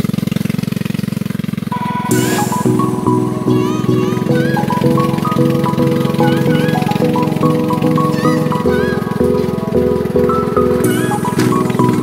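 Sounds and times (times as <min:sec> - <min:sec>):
gliding high tones: 0:01.7 - 0:12.0
stepping melody of short notes: 0:01.7 - 0:12.0.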